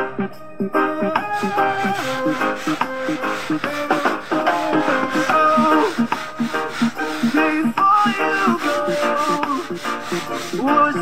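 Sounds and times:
song with singing: 0.2 - 11.0
brush scrubbing wet carpet: 1.1 - 11.0.

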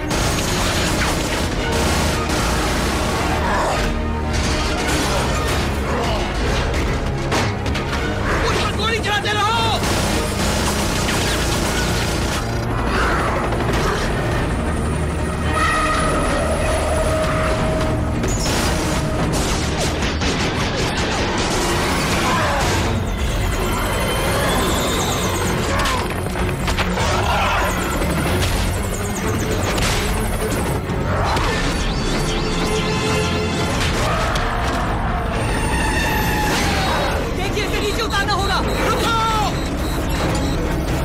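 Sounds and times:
dramatic orchestral score: 0.0 - 41.0.

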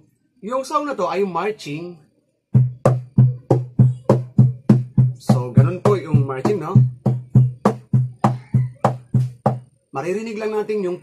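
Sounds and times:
acoustic guitar strumming: 2.6 - 9.7.

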